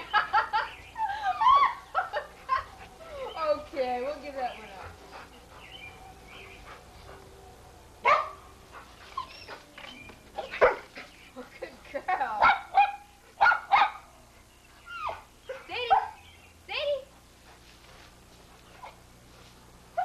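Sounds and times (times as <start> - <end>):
dog barking: 8.0 - 8.4, 10.4 - 10.9, 12.4 - 14.1, 15.8 - 16.2.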